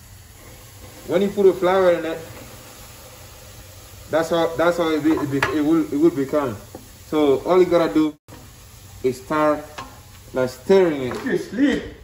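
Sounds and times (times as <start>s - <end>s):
oil hissing in a pot: 0.0s - 12.0s.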